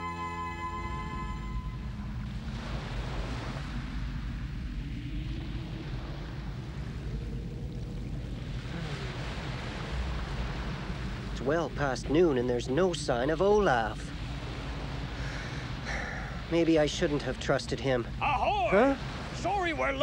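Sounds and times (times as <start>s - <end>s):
surf hiss: 0.1s - 20.0s
waves washing against harbour: 0.1s - 20.0s.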